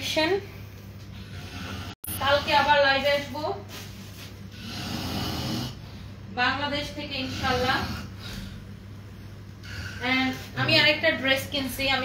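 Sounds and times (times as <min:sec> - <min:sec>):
person snoring: 0:01.2 - 0:02.6, 0:04.5 - 0:05.9.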